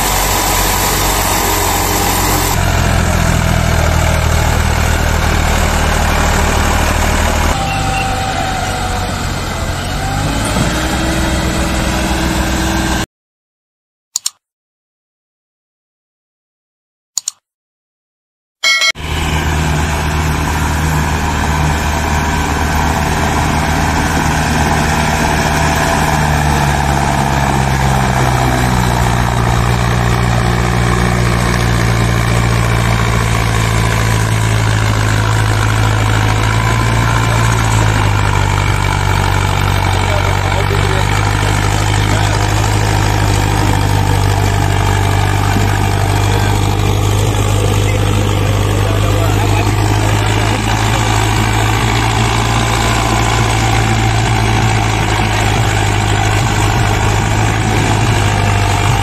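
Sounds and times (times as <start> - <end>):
tractor diesel engine under load: 0.0 - 13.1, 18.9 - 59.0.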